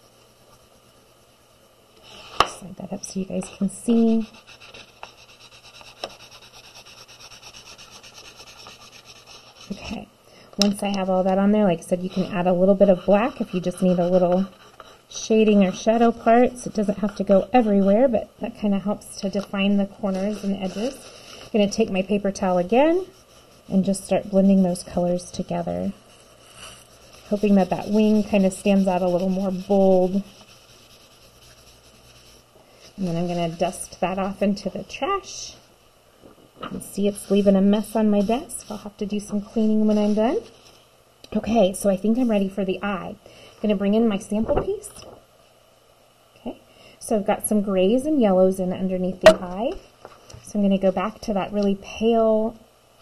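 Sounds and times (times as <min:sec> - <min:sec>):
chalk pastel scratching on paper: 0:03.0 - 0:10.0, 0:10.8 - 0:18.1, 0:18.8 - 0:35.3, 0:36.8 - 0:40.8.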